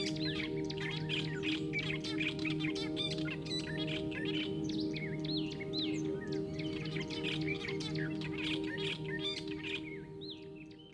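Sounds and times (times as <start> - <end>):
pulsing music drone: 0.0 - 10.9
small birds chirping: 0.0 - 10.9.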